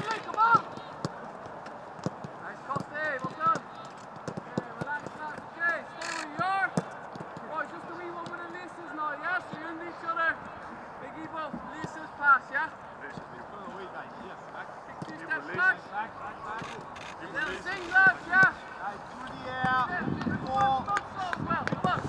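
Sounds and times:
players shouting: 0:00.0 - 0:12.8, 0:14.9 - 0:22.0.

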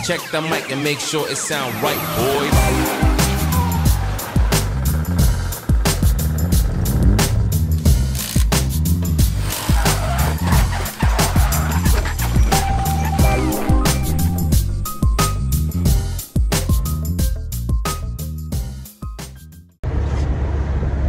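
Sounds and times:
car engines: 0:00.0 - 0:16.0, 0:19.8 - 0:21.0
music with beat and bass line: 0:00.0 - 0:19.8
tyre squeal: 0:09.3 - 0:14.5.

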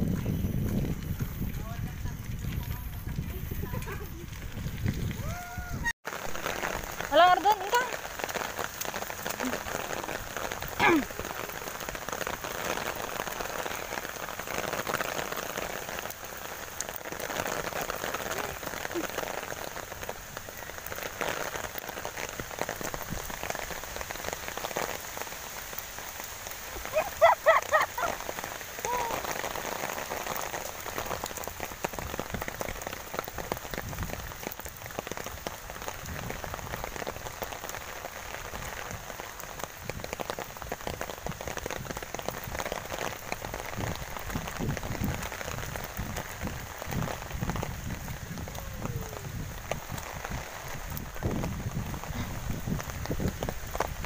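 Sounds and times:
steady rain falling: 0:00.0 - 0:54.0
person's voice: 0:07.1 - 0:08.0, 0:10.8 - 0:11.4, 0:28.8 - 0:29.2, 0:48.5 - 0:49.4.

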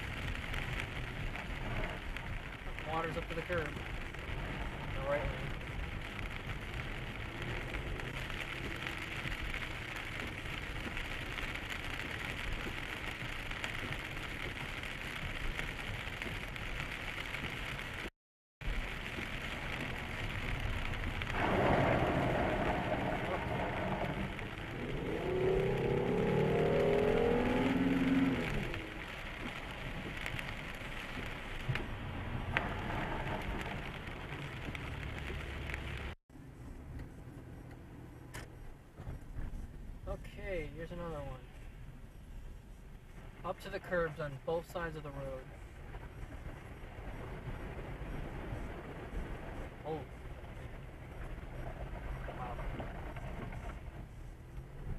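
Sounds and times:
tyre and road noise on wet road: 0:00.0 - 0:54.9
water spray rushing: 0:18.7 - 0:36.0.

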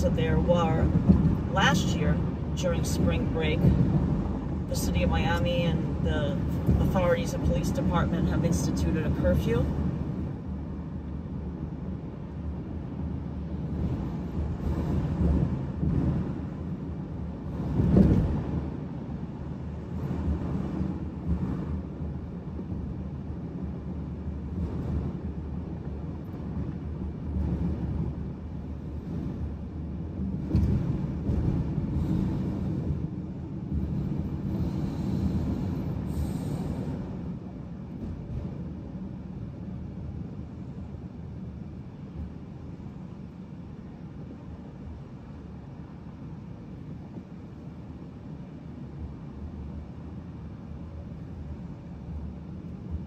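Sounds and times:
car cabin road rumble: 0:00.0 - 0:53.0.

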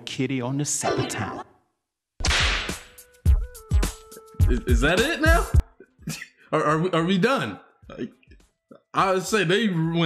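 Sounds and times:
whip-crack sound effect: 0:02.2 - 0:03.0.

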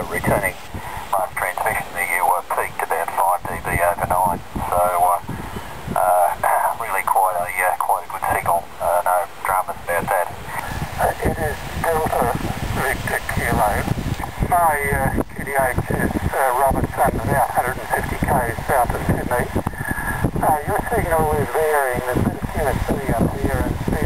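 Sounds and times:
thin voice from radio speaker: 0:00.0 - 0:05.2, 0:06.0 - 0:24.0.

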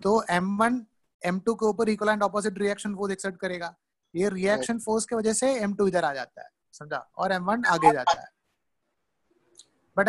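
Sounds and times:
person speaking: 0:00.0 - 0:08.4.

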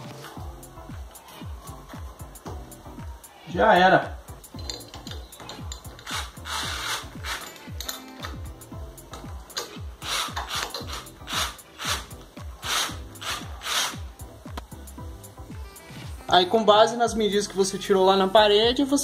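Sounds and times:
cordless drill driving screws: 0:06.0 - 0:07.6, 0:10.0 - 0:12.0, 0:12.6 - 0:14.0.

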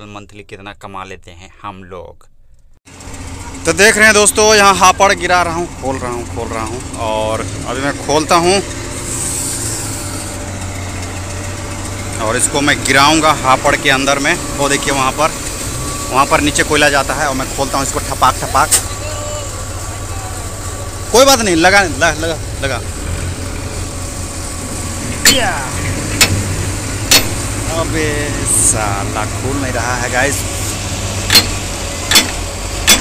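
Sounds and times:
diesel truck engine idling: 0:02.9 - 0:33.0.

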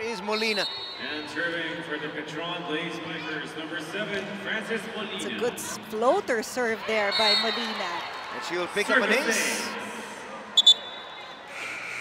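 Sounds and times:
referee's whistle blasts: 0:00.4 - 0:01.1, 0:10.6 - 0:11.1.

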